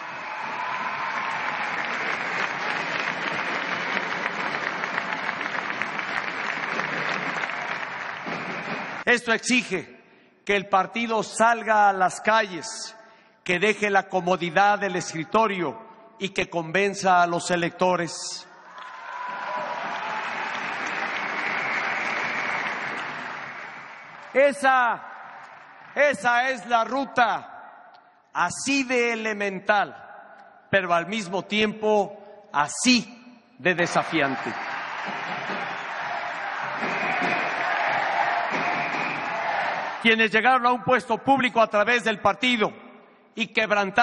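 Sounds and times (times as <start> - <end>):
large crowd applauding: 0.0 - 9.1, 18.7 - 26.0, 33.8 - 40.2.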